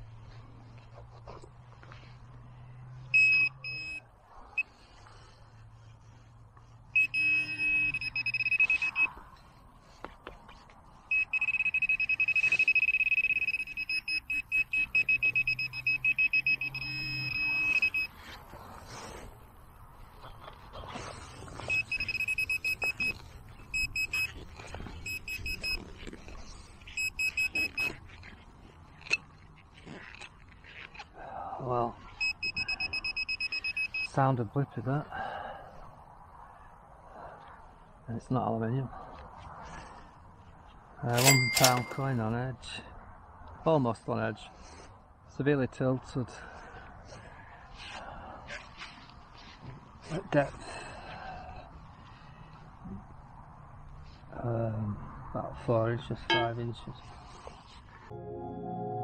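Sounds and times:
high-pitched electronic pinpointer tone: 7.0 - 9.1, 11.1 - 18.2, 21.6 - 24.4, 25.0 - 25.8, 26.9 - 28.0, 32.1 - 34.1, 41.2 - 42.0, 56.3 - 56.6.

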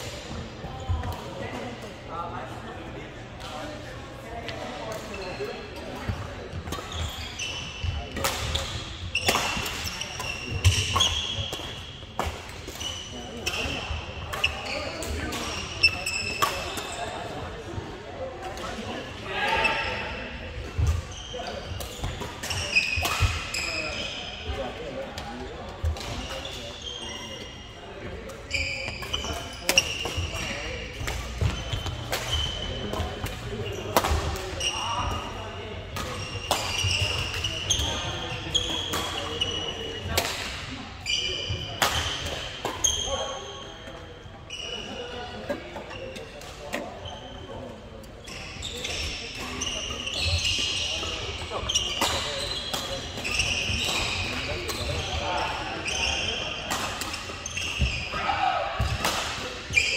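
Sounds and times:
sneaker squeaks on wooden floor: 6.6 - 17.0, 20.6 - 24.6, 25.9 - 27.8, 28.4 - 40.1, 41.0 - 47.6, 48.2 - 58.2, 59.6 - 59.9.

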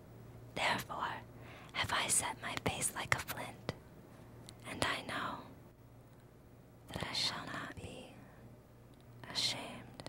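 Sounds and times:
faint steady hum: 0.0 - 10.0
person whispering: 1.8 - 3.8, 4.6 - 5.5, 6.9 - 8.3, 9.2 - 10.0.

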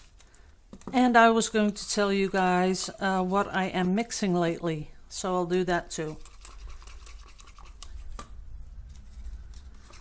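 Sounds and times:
stick scraping paint cup: 6.0 - 8.3.

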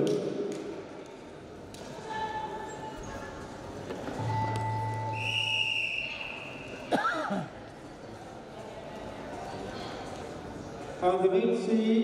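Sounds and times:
murmur of distant voices: 5.1 - 12.0.

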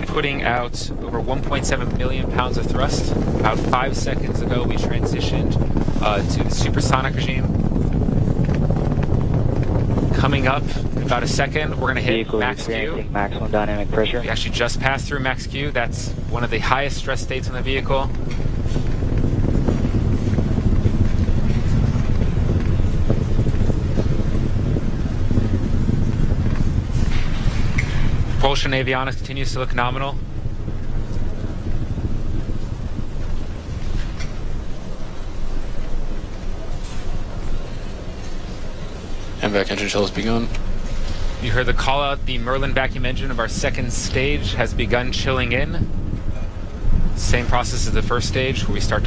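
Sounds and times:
rocket engines rumbling: 0.0 - 49.0.

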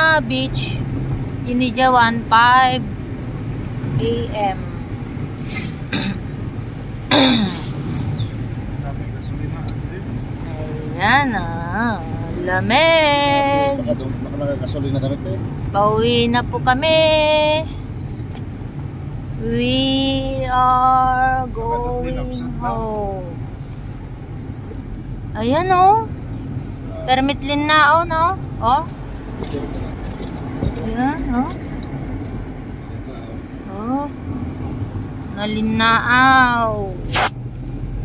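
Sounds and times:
vehicle engine and tyres rumbling: 0.0 - 38.0
person shouting a vowel: 21.9 - 22.8.

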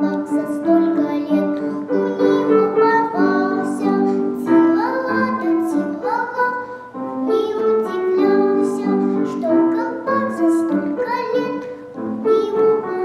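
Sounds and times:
girl singing: 0.0 - 13.0
piano accompaniment: 0.0 - 13.0.

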